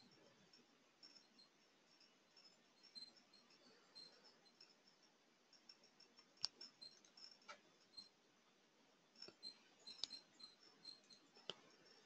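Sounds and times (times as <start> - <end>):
faint high ticks: 5.5 - 8.1, 9.2 - 12.0.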